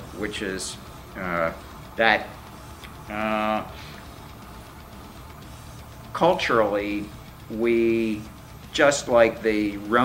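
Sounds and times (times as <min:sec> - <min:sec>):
low room hum with hiss: 0:00.0 - 0:10.0.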